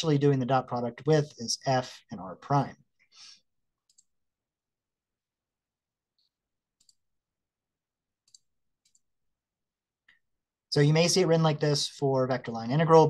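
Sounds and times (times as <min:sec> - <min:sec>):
computer mouse clicks: 0:03.8 - 0:04.1, 0:06.2 - 0:07.0, 0:08.2 - 0:09.1.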